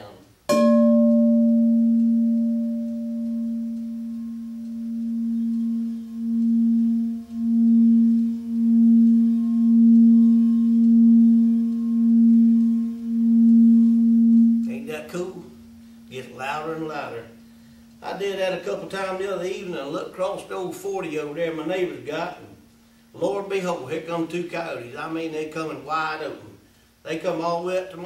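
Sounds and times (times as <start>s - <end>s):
singing bowl low tone: 0.5s - 18.1s.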